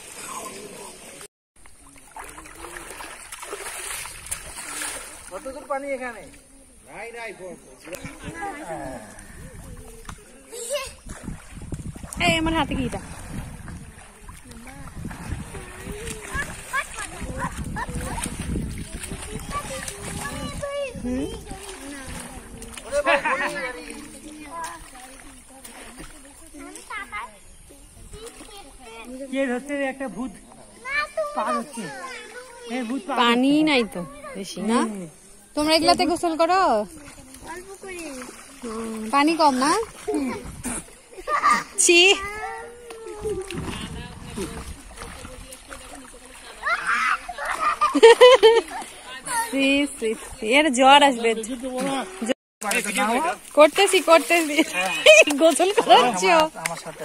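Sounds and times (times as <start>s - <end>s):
water splashing and sloshing: 0.0s - 57.0s
people calling: 13.9s - 29.3s, 30.4s - 57.0s.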